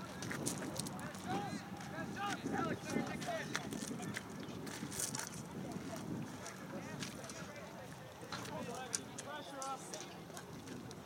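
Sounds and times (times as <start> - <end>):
wind rumbling on microphone: 0.0 - 9.4, 10.2 - 11.0.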